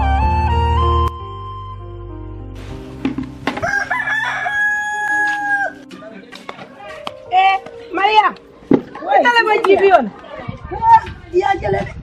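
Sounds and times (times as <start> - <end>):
soft background tune: 0.0 - 10.2
rooster crowing: 3.6 - 5.9.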